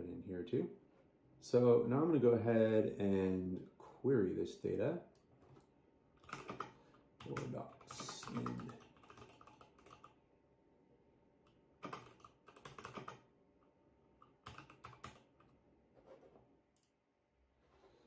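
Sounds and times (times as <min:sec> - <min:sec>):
typing on computer keyboard: 0:06.2 - 0:10.2, 0:11.8 - 0:13.3, 0:14.2 - 0:15.5.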